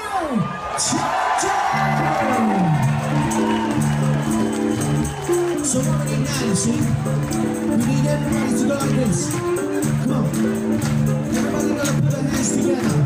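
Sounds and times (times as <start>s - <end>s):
crowd cheering and shouting: 0.0s - 13.0s
rock band playing: 1.7s - 13.0s
percussion hits: 2.0s - 13.0s.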